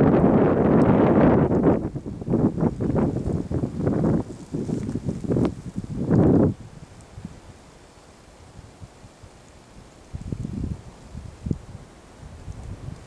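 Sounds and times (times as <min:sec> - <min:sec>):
wind buffeting microphone: 0:00.0 - 0:07.6, 0:08.4 - 0:13.0.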